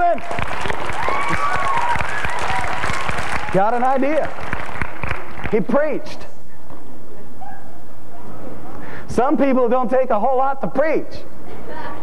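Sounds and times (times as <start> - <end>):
congregation applauding: 0.0 - 5.7.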